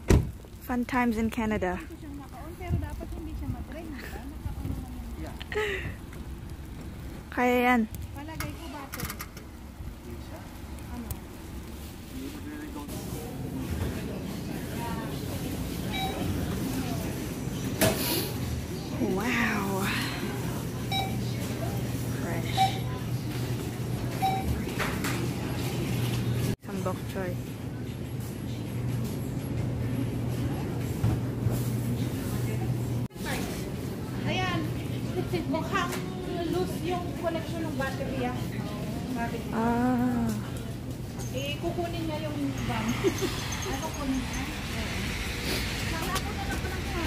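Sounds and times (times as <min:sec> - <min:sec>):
refrigerator hum: 0:04.1 - 0:44.8
store noise: 0:05.9 - 0:47.0.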